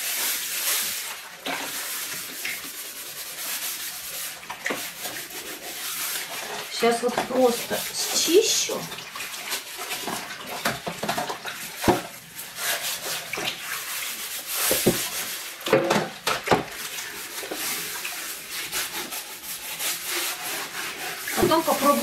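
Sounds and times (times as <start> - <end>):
sponge scrubbing metal tray: 0.0 - 22.0
water sloshing in basin: 0.6 - 22.0.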